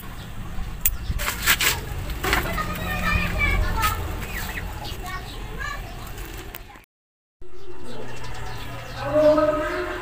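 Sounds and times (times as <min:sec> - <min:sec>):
children talking and calling: 0:01.2 - 0:10.0.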